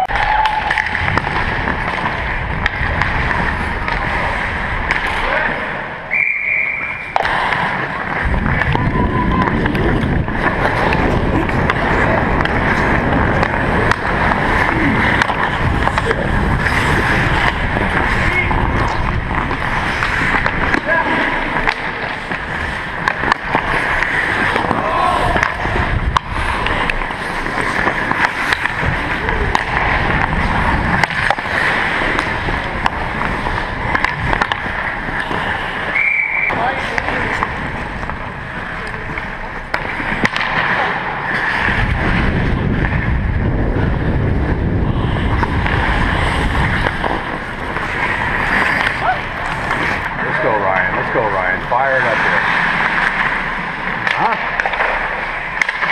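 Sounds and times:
sticks and puck clicking: 0.0 - 5.6, 6.4 - 42.2, 45.3 - 55.9
skate blades scraping ice: 0.0 - 55.9
wind rumble on microphone: 8.2 - 20.7, 25.1 - 27.4, 28.6 - 34.5, 41.6 - 51.2.

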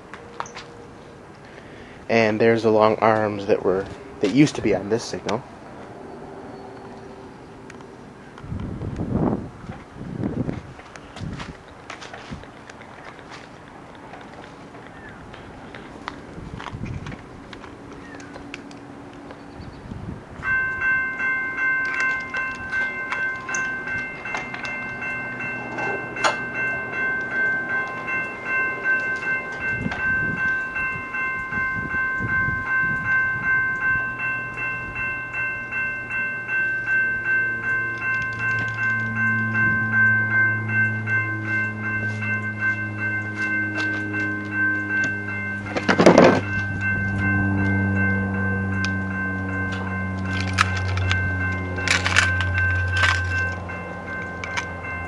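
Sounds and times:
crossing signal bell ringing: 0.0 - 55.0.

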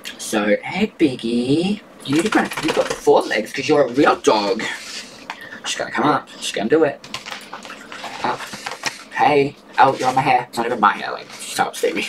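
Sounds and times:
dog claws clicking and scratching: 2.0 - 3.3.

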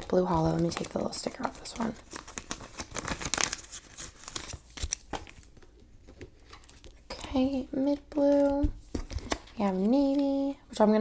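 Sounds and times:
plastic sleeves crinkling: 0.0 - 10.5.

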